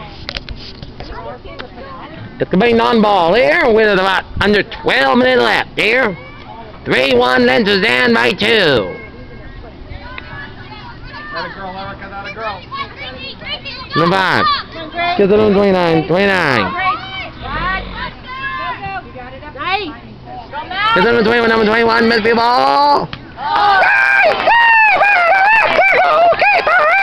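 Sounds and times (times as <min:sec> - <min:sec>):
girls calling and shouting: 0:05.9 - 0:06.9, 0:08.8 - 0:23.9.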